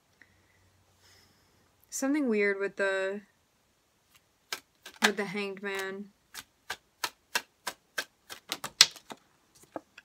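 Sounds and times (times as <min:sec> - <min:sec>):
cards being shuffled: 0:04.1 - 0:10.0.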